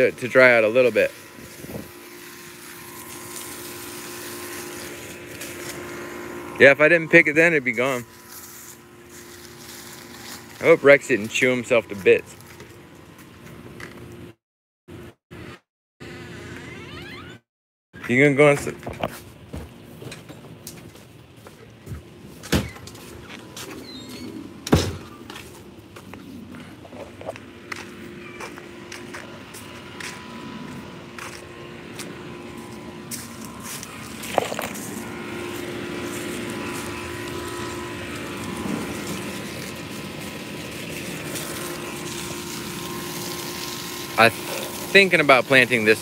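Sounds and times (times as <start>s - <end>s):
garden hose running water: 0.0s - 13.2s, 26.9s - 46.0s.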